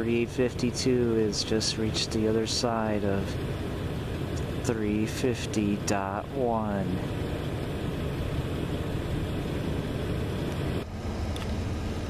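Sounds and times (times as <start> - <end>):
continuous low drone: 0.0 - 12.0.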